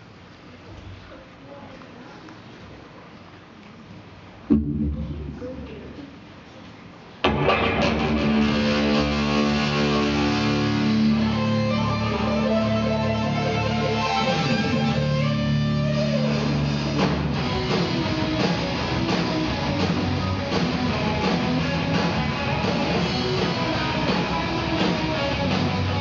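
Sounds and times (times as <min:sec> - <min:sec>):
electric guitar chord ringing: 0:07.2 - 0:16.7
rock guitar riff: 0:07.2 - 0:26.0.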